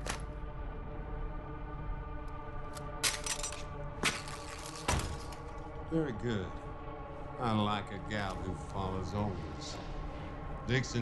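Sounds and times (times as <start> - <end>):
tense film score: 0.0 - 11.0.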